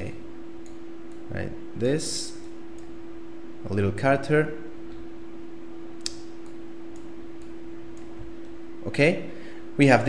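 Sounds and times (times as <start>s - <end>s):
low electrical hum: 0.0s - 10.0s
computer mouse clicks: 6.0s - 8.6s.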